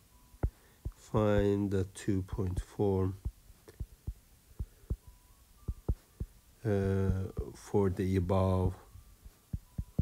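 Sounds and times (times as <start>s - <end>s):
stylus tapping on glass screen: 2.5s - 5.1s, 5.7s - 7.5s, 9.5s - 10.0s.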